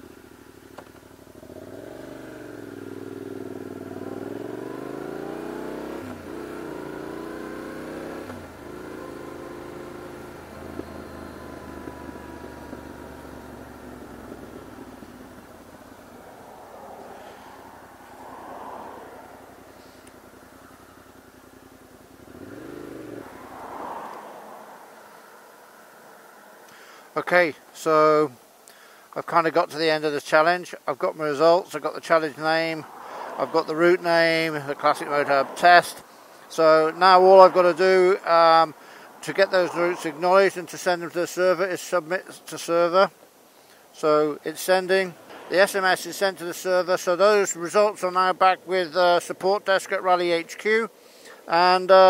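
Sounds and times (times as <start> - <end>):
motorcycle engine revving: 0.0 - 24.8.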